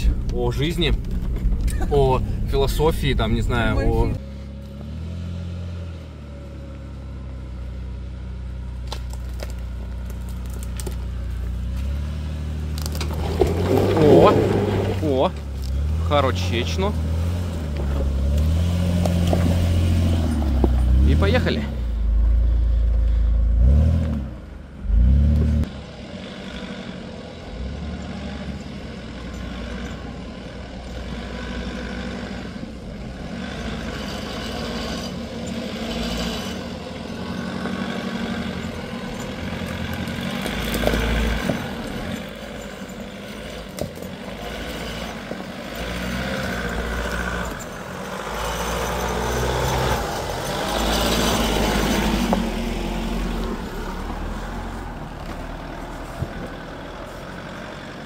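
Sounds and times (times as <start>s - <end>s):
loud low rumble: 0.0s - 4.2s
suv engines running at low speed: 0.0s - 58.0s.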